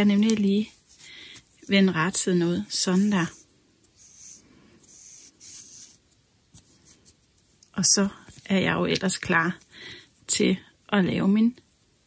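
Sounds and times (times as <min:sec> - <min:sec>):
yarn rustling through stitches: 0:00.0 - 0:09.6.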